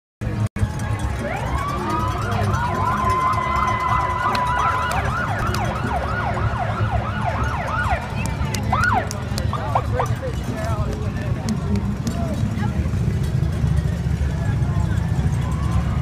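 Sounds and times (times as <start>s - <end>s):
police sirens wailing and yelping: 0.6s - 16.0s.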